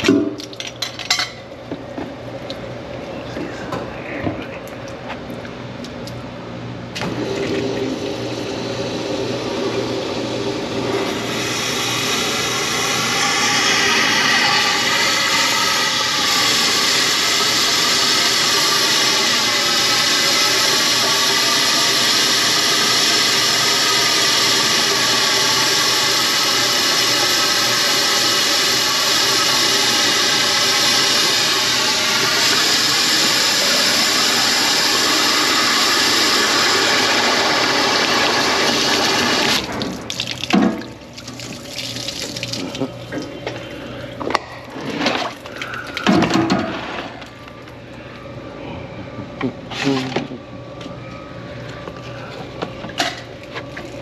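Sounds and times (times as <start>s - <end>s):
pump running: 7.0s - 48.2s
water spraying from hose gun: 8.5s - 40.4s.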